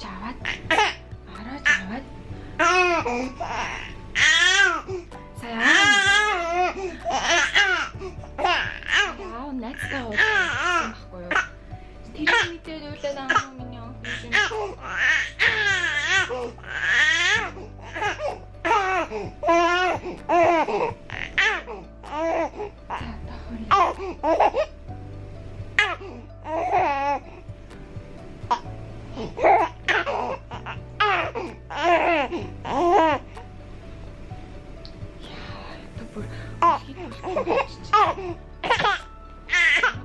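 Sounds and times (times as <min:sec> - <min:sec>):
soft background music: 0:00.0 - 0:40.0
baby laughing and squealing: 0:36.6 - 0:40.0.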